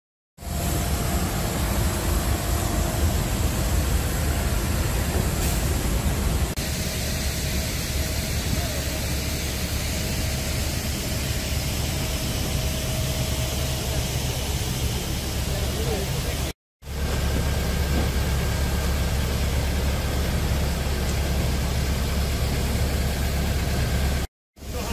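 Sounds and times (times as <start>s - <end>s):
jet aircraft roar: 0.4s - 16.5s
ramp equipment: 0.4s - 24.9s.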